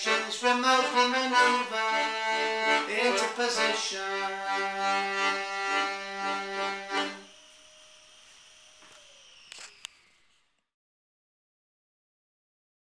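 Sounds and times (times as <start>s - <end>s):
accordion playing chords: 0.0s - 7.6s
short clicks: 9.4s - 10.1s.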